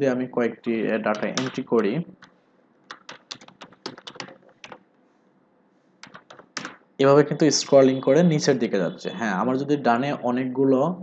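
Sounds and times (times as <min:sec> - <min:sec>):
computer keyboard typing: 0:01.0 - 0:04.8, 0:06.0 - 0:06.8.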